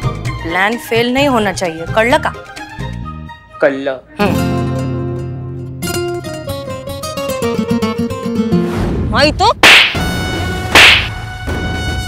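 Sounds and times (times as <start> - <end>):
background music: 0.0 - 12.0
whip-crack sound effects: 9.6 - 10.1, 10.8 - 11.2.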